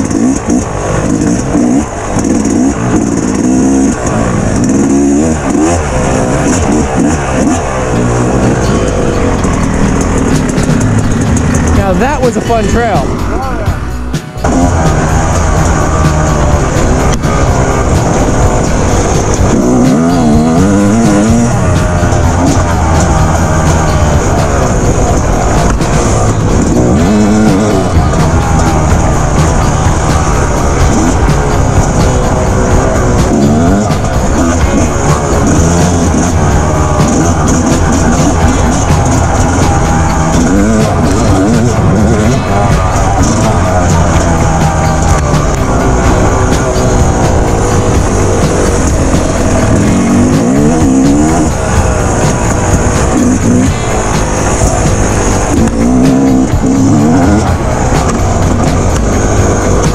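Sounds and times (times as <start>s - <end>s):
dirt bike engine revving: 0.0s - 59.9s
loud background music: 0.0s - 59.9s.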